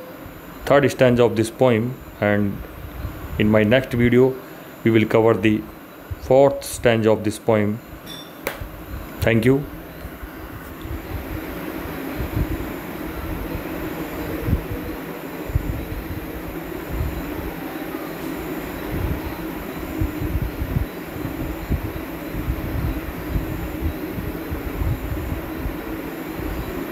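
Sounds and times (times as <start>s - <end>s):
steady rumbling background noise: 0.0s - 26.9s.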